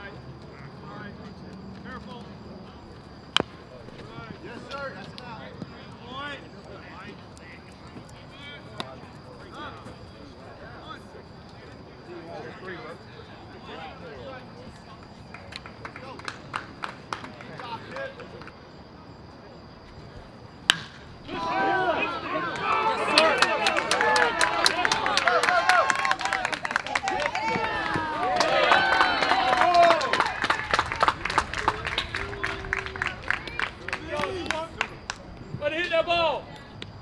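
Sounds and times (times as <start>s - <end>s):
bat cracking against ball: 3.3s - 3.6s, 20.6s - 21.4s
people clapping: 14.8s - 18.6s, 20.7s - 35.4s
crowd yelling and cheering: 20.7s - 34.8s.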